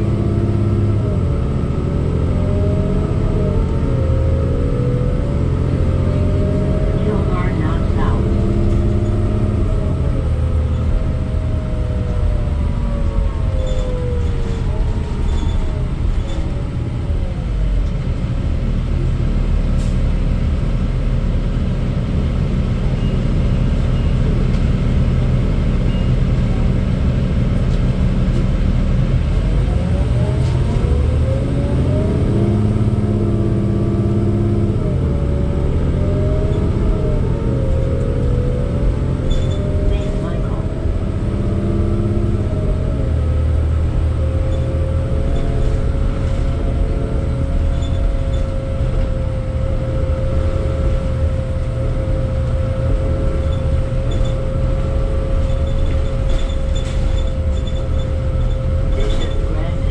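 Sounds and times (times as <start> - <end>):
bus diesel engine running: 0.0 - 59.9
road and tyre rumble: 0.0 - 59.9.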